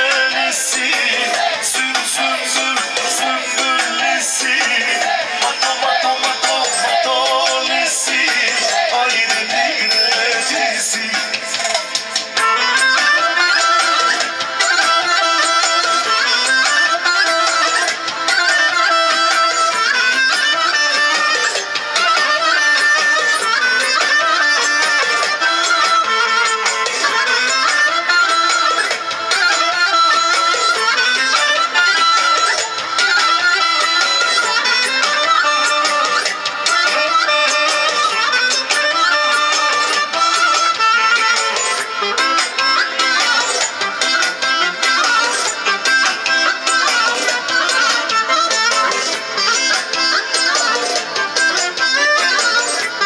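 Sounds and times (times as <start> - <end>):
keyboard accompaniment: 0.0 - 53.0
wind instrument melody: 0.0 - 53.0.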